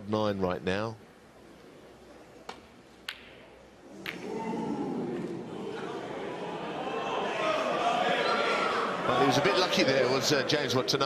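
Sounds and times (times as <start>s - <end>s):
crowd murmuring: 3.9s - 11.0s.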